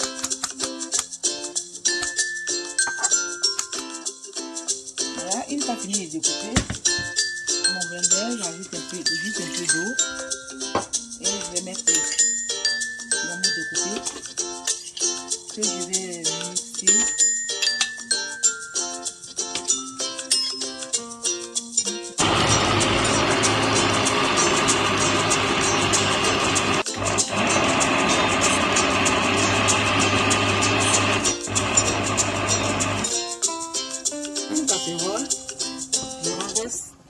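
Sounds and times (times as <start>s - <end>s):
background music: 0.0s - 37.0s
blender motor running: 22.2s - 33.1s.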